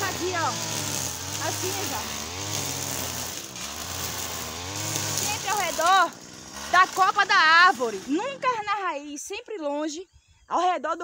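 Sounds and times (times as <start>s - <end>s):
distant brushcutter engine: 0.0s - 9.1s.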